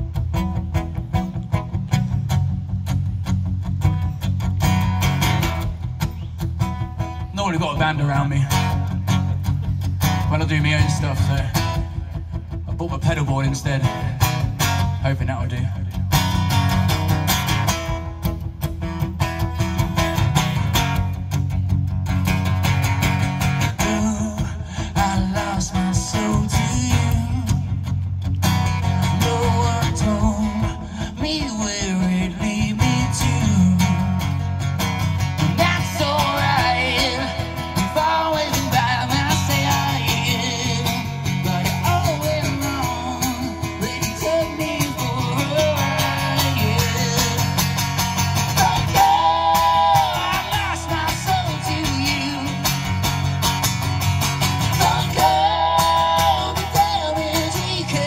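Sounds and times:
amplified acoustic guitar strumming: 0.0 - 58.0
man singing: 10.1 - 16.1, 23.6 - 27.9, 28.8 - 34.5, 35.4 - 53.0, 54.5 - 58.0.

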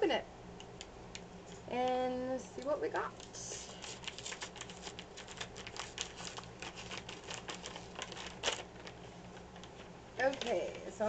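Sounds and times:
low electrical hum: 0.0 - 11.0
paper envelope tearing and crackling: 3.6 - 10.6.

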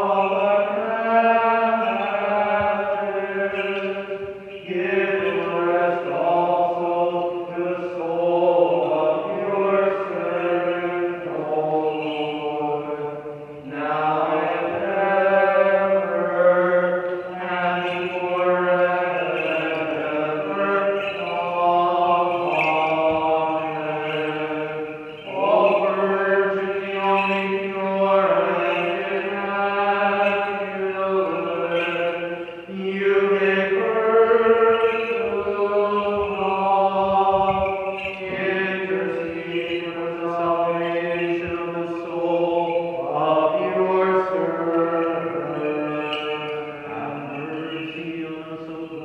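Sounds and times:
man chanting unaccompanied: 0.0 - 49.0.

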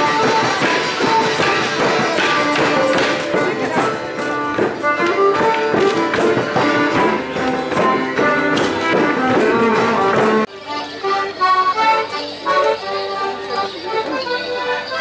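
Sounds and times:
folk band playing dance tune: 0.0 - 15.0
sharp percussive beats: 0.0 - 15.0.

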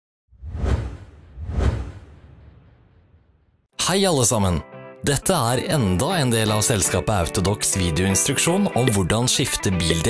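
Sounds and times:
deep whoosh sound effects: 0.3 - 3.7.

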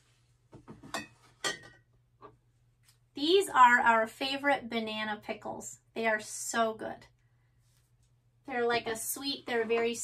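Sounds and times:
glass jars clinking: 0.9 - 1.8.

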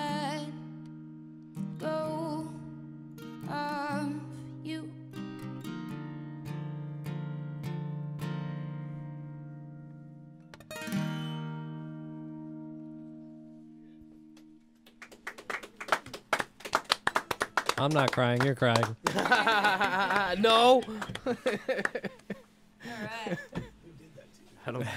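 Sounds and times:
acoustic guitar: 0.0 - 24.9
clapping: 14.4 - 22.3.

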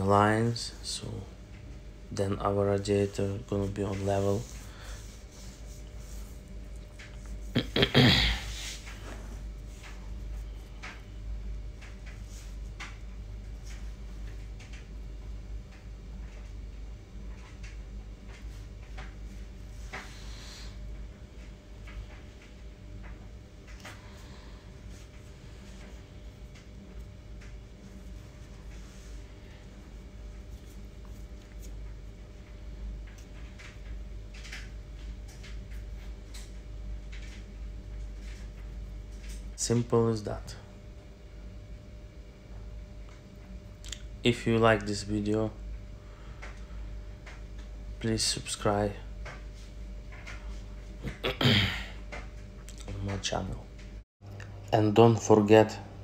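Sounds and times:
steady low hum: 0.0 - 56.0
handling rustling and rubbing: 3.0 - 7.6.

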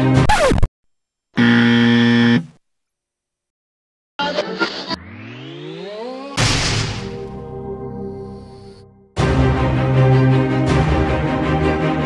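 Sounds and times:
low electronic buzz: 1.4 - 2.6.

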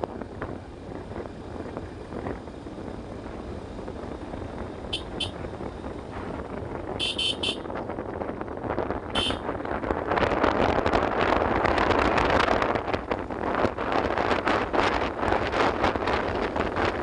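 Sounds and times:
motorcycle engine riding: 0.0 - 17.0
wind noise: 0.0 - 17.0.

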